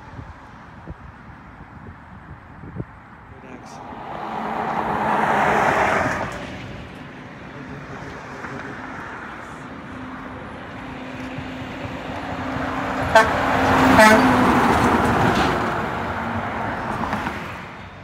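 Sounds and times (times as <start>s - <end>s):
truck engine passing: 3.3s - 18.0s
truck horn: 12.9s - 14.7s.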